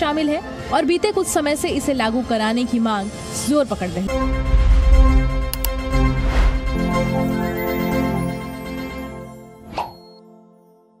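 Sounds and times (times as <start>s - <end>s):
synthesized jingle notes: 6.6s - 10.6s.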